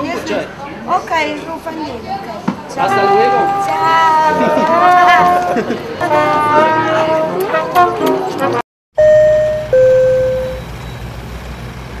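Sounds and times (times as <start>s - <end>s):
falling two-note tone: 9.0s - 10.7s.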